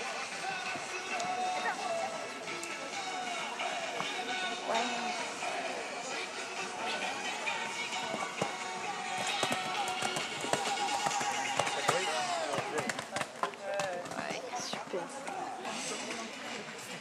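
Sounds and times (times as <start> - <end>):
background music: 0.0 - 12.9
spectators' indistinct voices: 0.0 - 17.0.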